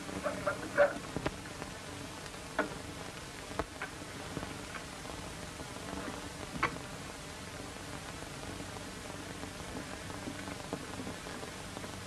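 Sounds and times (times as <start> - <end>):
film soundtrack hiss: 0.0 - 12.0
faint clicks: 0.2 - 4.9.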